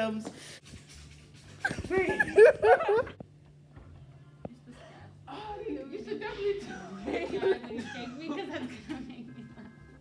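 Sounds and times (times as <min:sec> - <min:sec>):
girls laughing: 0:01.6 - 0:03.2, 0:06.5 - 0:09.9.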